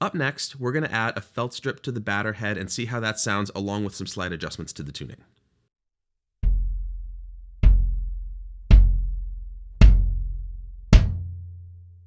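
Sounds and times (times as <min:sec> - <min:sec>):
kick drum hits: 0:06.4 - 0:07.0, 0:07.6 - 0:11.5.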